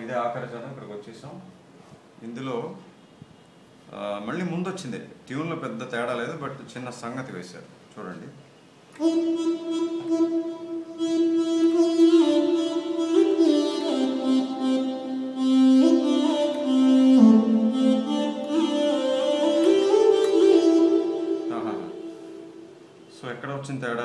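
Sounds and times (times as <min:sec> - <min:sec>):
electronic keyboard slow melody: 0:09.0 - 0:23.1.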